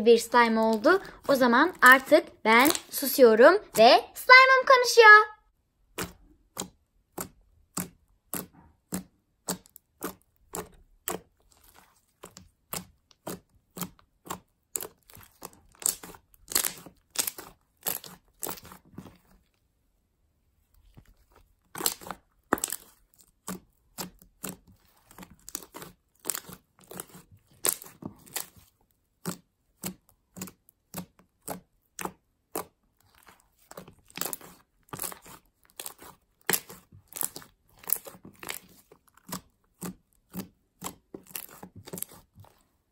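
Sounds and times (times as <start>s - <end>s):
slime squishing by hand: 0.0s - 4.6s, 5.6s - 42.9s.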